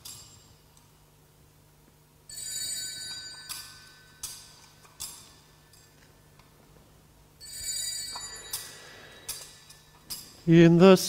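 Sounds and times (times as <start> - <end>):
altar bells ringing: 2.3 - 5.3, 7.4 - 10.4.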